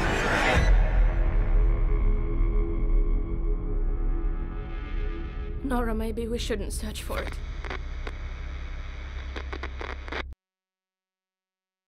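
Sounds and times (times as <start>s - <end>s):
low rumbling horror soundtrack: 0.0s - 9.2s.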